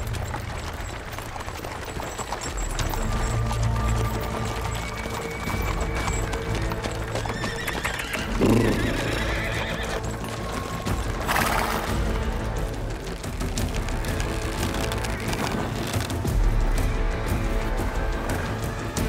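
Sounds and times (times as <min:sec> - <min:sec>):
background music: 0:00.0 - 0:19.0
horse hooves clip-clopping on dirt: 0:00.0 - 0:19.0
horse whinnying: 0:04.5 - 0:12.2.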